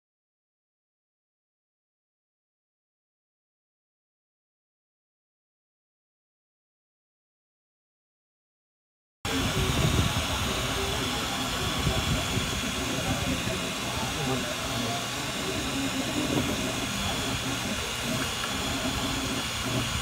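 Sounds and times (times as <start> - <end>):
cooling fans whirring: 9.3 - 20.0
printer motors buzzing: 9.3 - 20.0.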